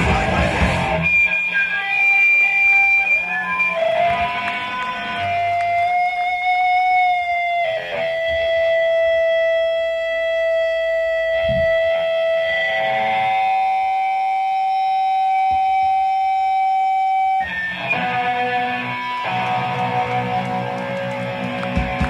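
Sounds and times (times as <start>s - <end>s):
electric guitar feedback: 0.0s - 22.0s
electric guitar playing: 0.0s - 22.0s.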